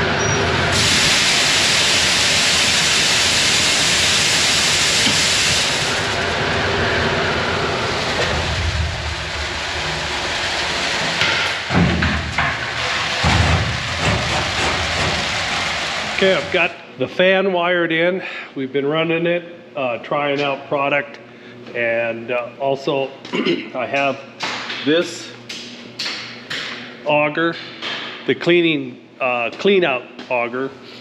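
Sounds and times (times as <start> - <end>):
fan rushing: 0.0 - 19.0
dry peas hissing on metal: 0.8 - 6.2.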